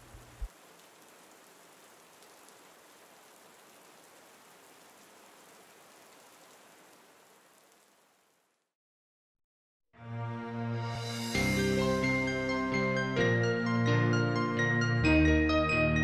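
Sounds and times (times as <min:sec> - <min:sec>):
heavy rain hissing: 0:00.0 - 0:08.6.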